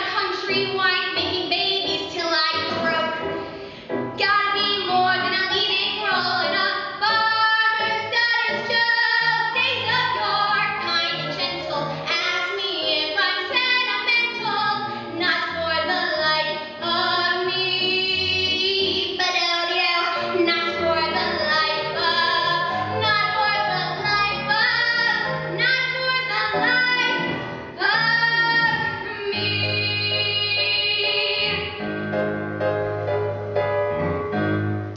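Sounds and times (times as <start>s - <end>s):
girl singing: 0.0s - 3.3s, 4.2s - 31.7s
low musical accompaniment: 0.0s - 34.9s.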